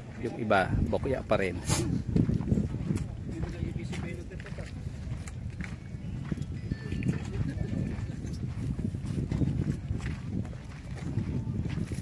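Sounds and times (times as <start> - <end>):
people talking outdoors: 0.0 - 12.0.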